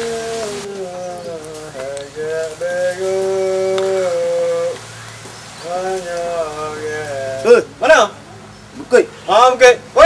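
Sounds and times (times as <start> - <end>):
person singing long notes: 0.0 - 4.8
steady hiss: 0.0 - 8.0.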